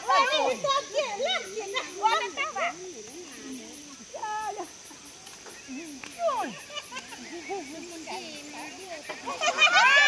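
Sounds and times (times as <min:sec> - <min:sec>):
women calling out: 0:00.0 - 0:04.8, 0:05.7 - 0:06.7.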